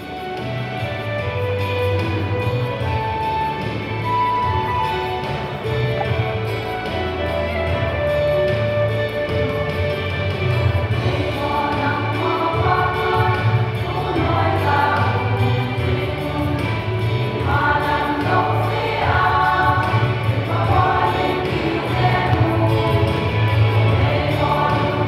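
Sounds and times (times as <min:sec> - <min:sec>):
steady low backing: 0:00.0 - 0:25.0
women's choir singing a hymn: 0:10.9 - 0:25.0.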